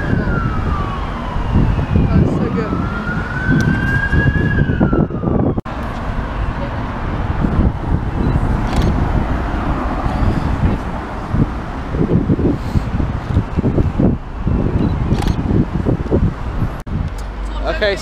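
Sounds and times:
emergency siren wailing: 0.0s - 5.6s
street traffic noise: 0.0s - 18.0s.

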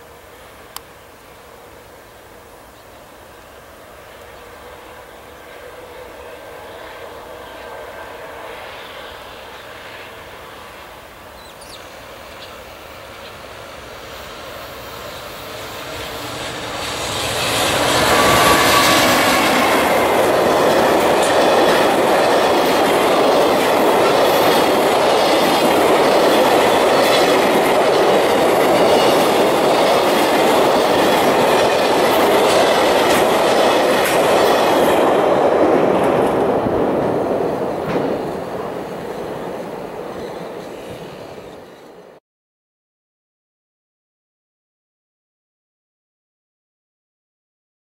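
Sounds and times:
electric locomotive passing: 0.0s - 42.2s
train wheels clattering over rail: 14.0s - 42.0s.

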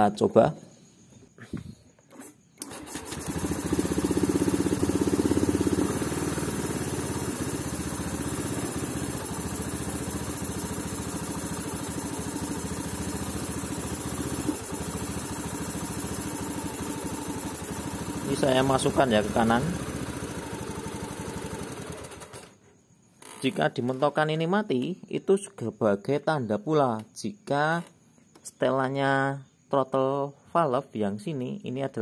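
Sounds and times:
scooter engine starting and idling: 1.6s - 22.6s.

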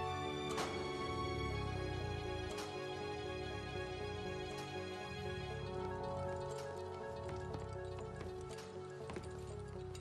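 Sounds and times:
sustained film soundtrack music: 0.0s - 10.0s
light irregular knocks: 5.9s - 10.0s.

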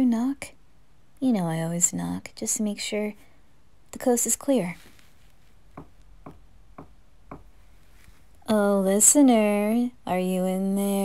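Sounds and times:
knuckles knocking on door: 5.8s - 7.6s.

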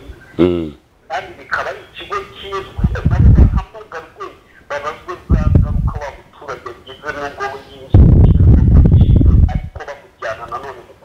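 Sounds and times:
distorted voice over phone line: 0.0s - 11.0s
rough low burst: 2.8s - 3.6s, 5.3s - 6.0s, 7.9s - 9.8s.

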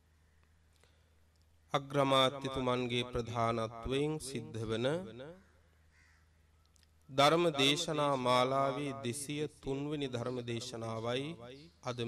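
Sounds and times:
faint bird call: 5.4s - 7.1s.

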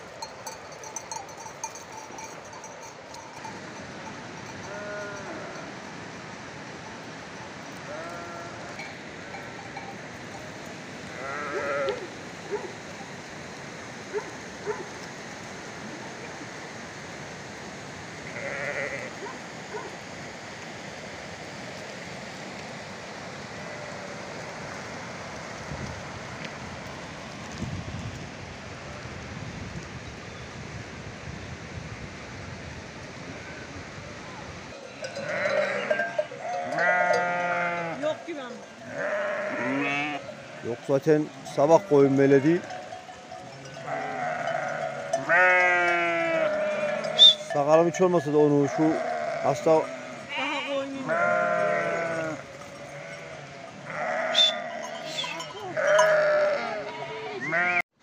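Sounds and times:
sheep bleating: 4.6s - 5.7s, 7.8s - 9.4s, 11.1s - 12.1s, 18.2s - 19.2s, 34.8s - 47.6s, 48.6s - 57.8s.

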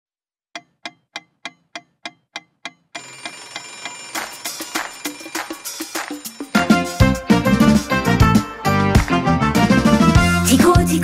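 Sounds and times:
alarm clock ticking: 0.6s - 7.3s
alarm clock bell ringing: 3.0s - 7.2s.

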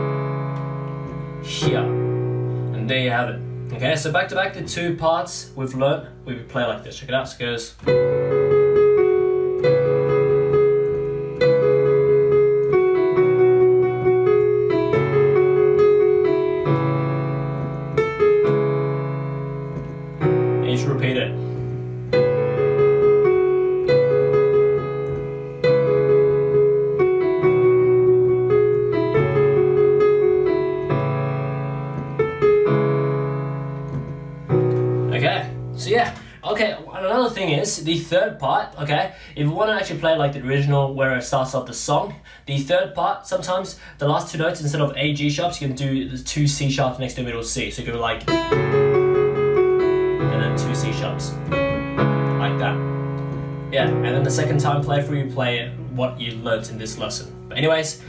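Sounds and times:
slow piano melody with chords: 0.0s - 6.6s, 7.7s - 36.4s, 47.8s - 58.0s.

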